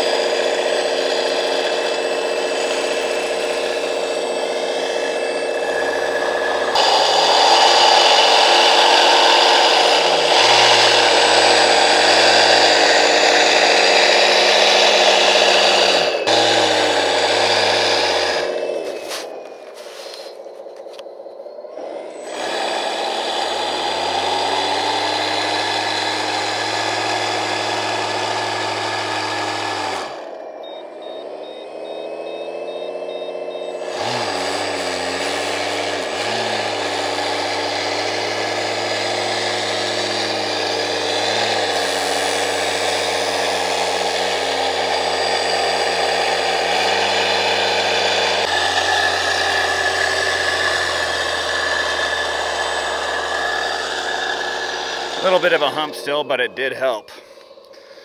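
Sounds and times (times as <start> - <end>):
electric motors whining: 0.0 - 58.0.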